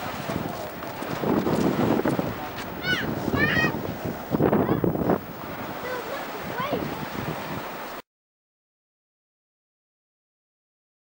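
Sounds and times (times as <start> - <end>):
surf: 0.0 - 8.0
wind buffeting microphone: 0.0 - 8.0.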